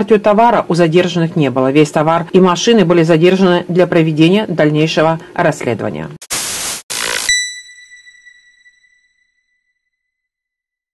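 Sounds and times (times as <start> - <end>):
static hiss bursts: 6.2 - 7.4
bell-like ping: 7.3 - 9.2.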